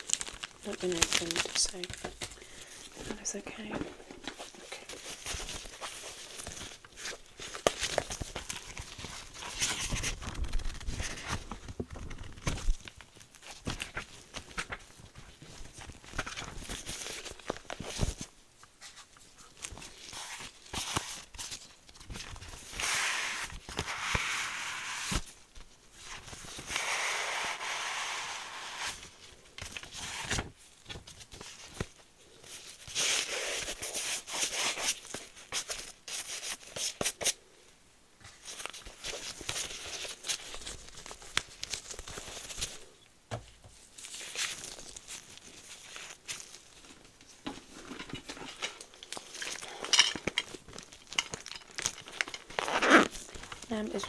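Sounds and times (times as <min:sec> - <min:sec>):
plastic pouch crinkling: 0:00.0 - 0:18.3, 0:43.9 - 0:47.1, 0:48.8 - 0:54.0
leafing through a booklet: 0:00.0 - 0:37.5, 0:38.2 - 0:43.0, 0:43.7 - 0:54.0
crackly rustling of gloved hands: 0:00.0 - 0:54.0.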